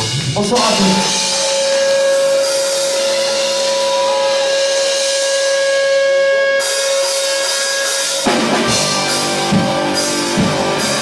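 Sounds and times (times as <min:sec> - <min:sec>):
cymbals hissing: 0:00.1 - 0:05.8
held guitar note ringing: 0:00.7 - 0:10.0.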